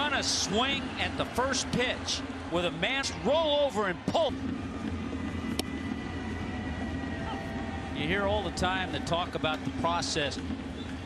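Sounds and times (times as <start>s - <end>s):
crowd rumble: 0.0s - 11.0s.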